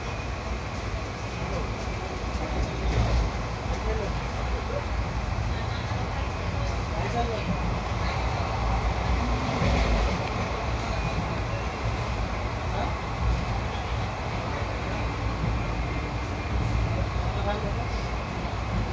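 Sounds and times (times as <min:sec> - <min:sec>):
train wheels rumbling on rails: 0:00.0 - 0:18.9.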